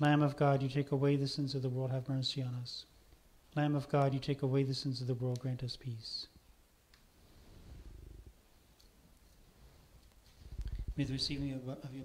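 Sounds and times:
faint low rumble: 0:07.3 - 0:08.4, 0:09.6 - 0:12.0.

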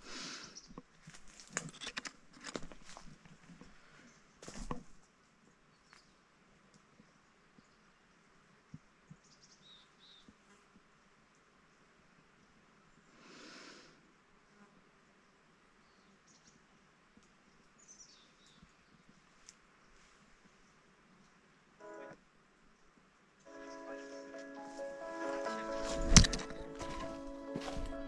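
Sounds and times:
soft steady hiss: 0:00.0 - 0:25.6.

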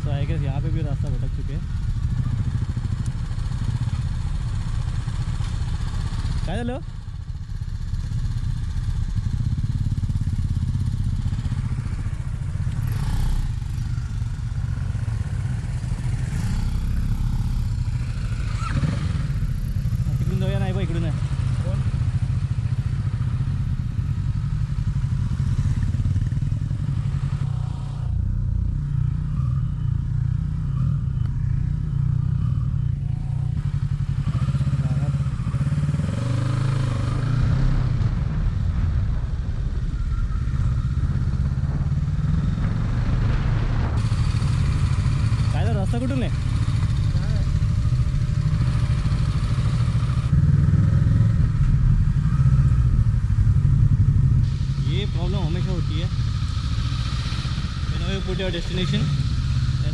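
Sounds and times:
motorcycle engine rumbling: 0:00.0 - 0:59.9.

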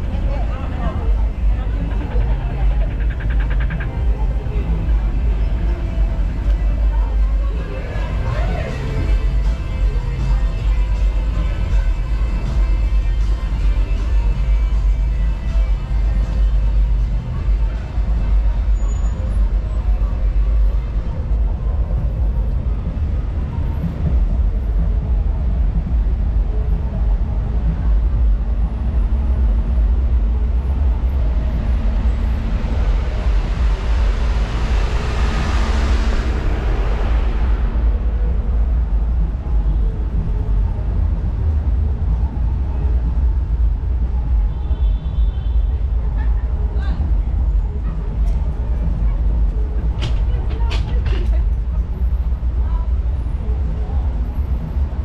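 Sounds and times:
street traffic rumble: 0:00.0 - 0:55.0.

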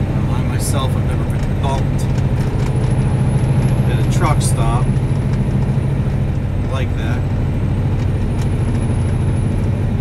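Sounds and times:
road noise: 0:00.0 - 0:10.0
truck diesel engine running: 0:00.0 - 0:10.0.

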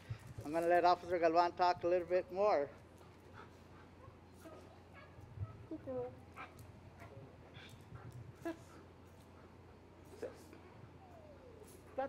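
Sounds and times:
dog whimpering: 0:10.8 - 0:12.0.

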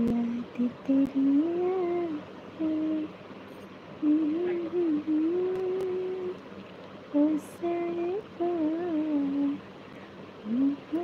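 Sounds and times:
woman humming: 0:01.0 - 0:03.1, 0:04.0 - 0:06.4.

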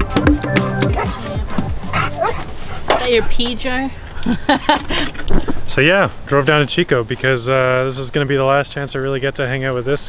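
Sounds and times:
background music: 0:00.0 - 0:02.4
dog yelping: 0:00.8 - 0:03.3.

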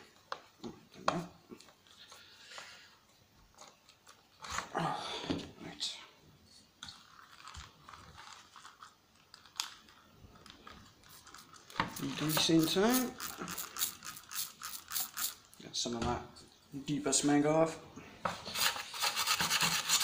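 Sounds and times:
screwdriver turning screws: 0:11.8 - 0:15.4.

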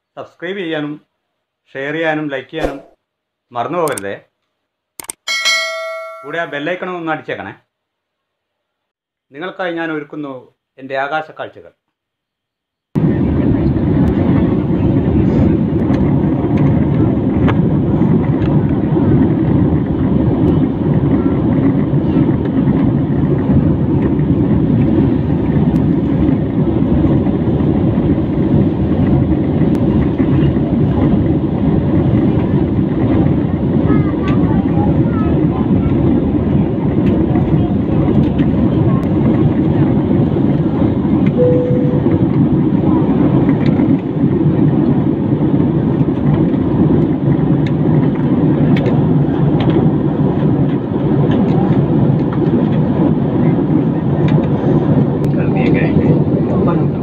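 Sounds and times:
jet airliner cabin noise: 0:13.0 - 0:57.0.

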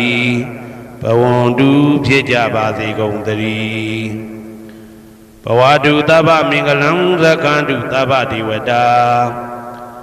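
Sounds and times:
low voice chanting: 0:00.0 - 0:04.5.

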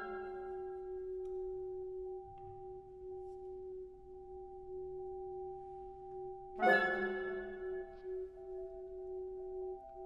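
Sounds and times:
pure steady tone: 0:00.0 - 0:10.0.

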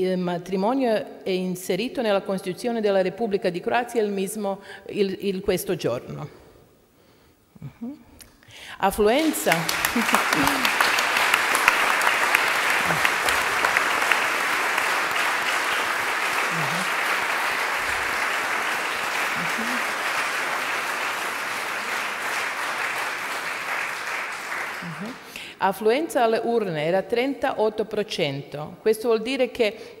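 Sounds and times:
audience applauding: 0:09.0 - 0:25.4.

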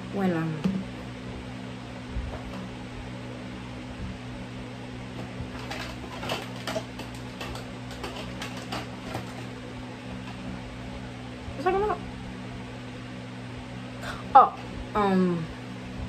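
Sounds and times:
fan humming: 0:00.0 - 0:16.0
small objects clicking and rustling: 0:05.6 - 0:09.5.

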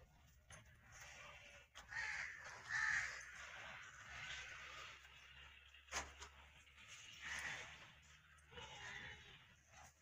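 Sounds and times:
crow cawing: 0:01.8 - 0:03.6.

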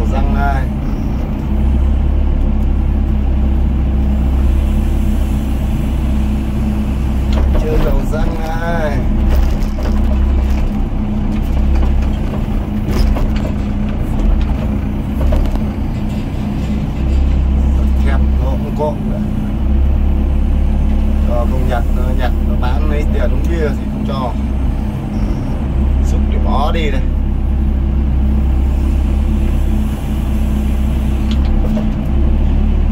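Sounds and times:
excavator diesel engine drone: 0:00.0 - 0:32.9.

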